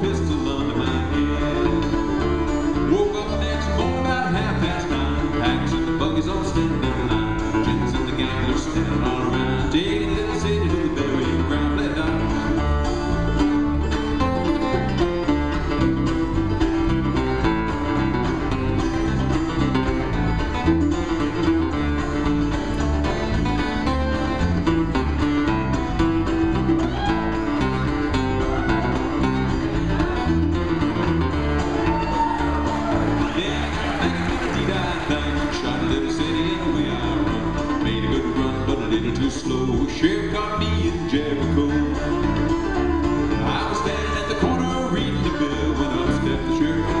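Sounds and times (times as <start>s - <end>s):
bluegrass band playing: 0.0s - 47.0s
rhythm guitar: 0.0s - 47.0s.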